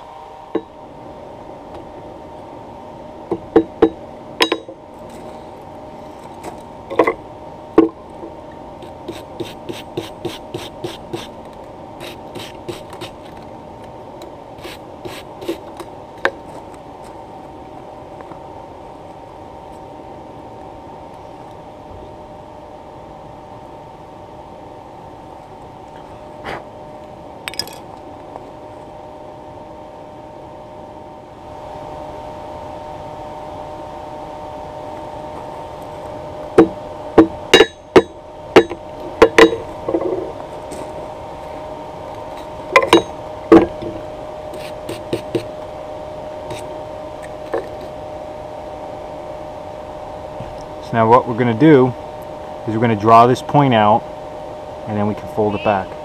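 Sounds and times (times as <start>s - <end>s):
steady multi-tone hum: 0.0s - 56.0s
hammer blows on an anvil: 36.6s - 39.6s.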